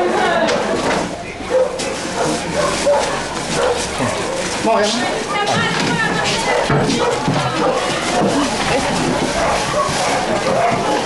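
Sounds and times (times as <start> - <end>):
dog barking: 1.5 - 4.5, 6.4 - 8.4, 9.3 - 11.0.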